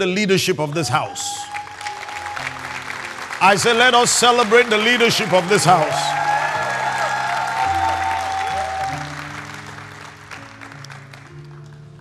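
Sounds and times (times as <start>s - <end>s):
congregation applauding: 0.7s - 12.0s
soft music of held chords: 1.6s - 12.0s.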